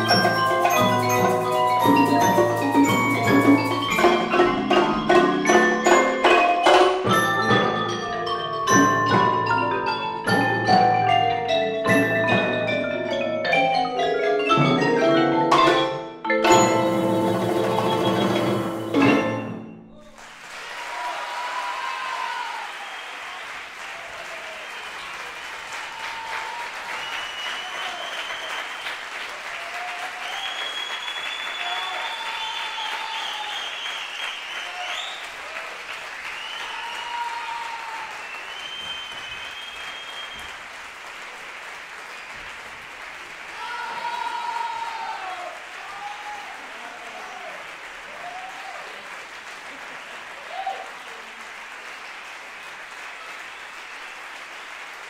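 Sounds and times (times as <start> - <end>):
voices cheering: 19.9 - 40.4, 43.5 - 51.4
audience applauding: 19.9 - 55.0
long high whistles: 26.9 - 29.0, 30.2 - 35.4, 36.3 - 37.1, 38.2 - 40.6.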